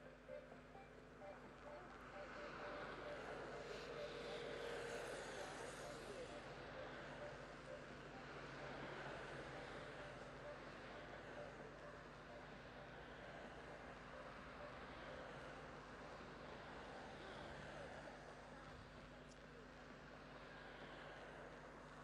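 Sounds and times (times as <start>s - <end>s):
road and motor noise: 0.0s - 22.0s.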